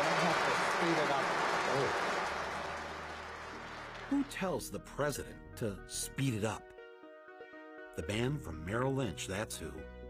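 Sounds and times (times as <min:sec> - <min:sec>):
audience applause: 0:00.0 - 0:04.6.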